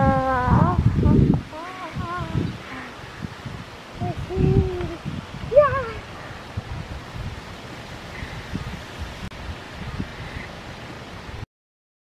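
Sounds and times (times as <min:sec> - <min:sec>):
child's voice: 0:00.0 - 0:03.0, 0:04.0 - 0:06.1
outdoor hiss: 0:00.0 - 0:11.4
wind rumbling on microphone: 0:00.0 - 0:11.4.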